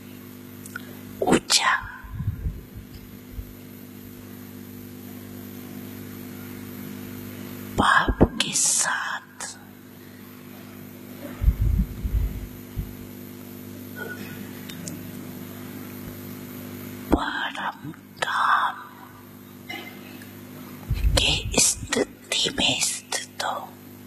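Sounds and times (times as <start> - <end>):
steady electrical hum: 0.0 - 24.0
elderly woman speaking slowly: 1.2 - 2.4, 7.8 - 9.7, 17.1 - 19.1, 21.1 - 23.8.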